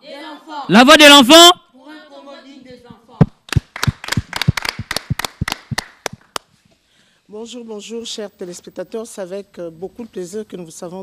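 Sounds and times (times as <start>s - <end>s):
people clapping: 3.4s - 6.5s.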